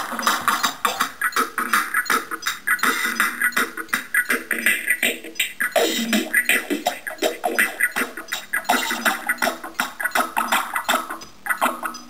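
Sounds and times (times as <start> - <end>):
electronic synthesizer music: 0.0 - 12.0.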